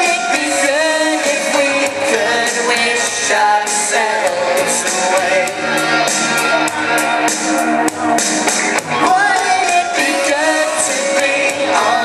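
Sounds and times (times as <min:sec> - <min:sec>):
karaoke backing track: 0:00.0 - 0:12.0.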